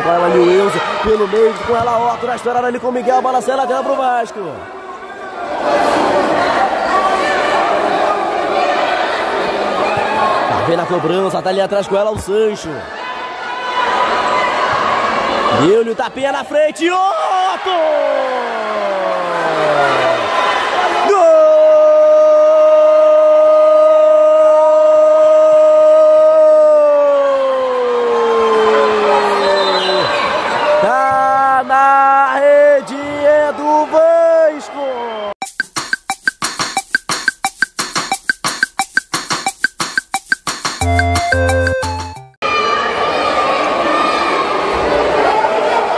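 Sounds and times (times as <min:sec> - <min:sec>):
crowd cheering: 0:00.0 - 0:12.0, 0:12.7 - 0:15.8, 0:16.8 - 0:35.4, 0:40.8 - 0:45.9
many voices echoing in a hall: 0:00.0 - 0:34.9, 0:42.4 - 0:45.9.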